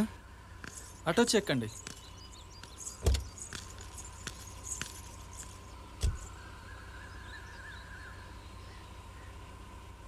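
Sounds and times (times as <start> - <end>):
faint scattered ticks: 0.5 - 6.5
dull thump: 3.0 - 3.4.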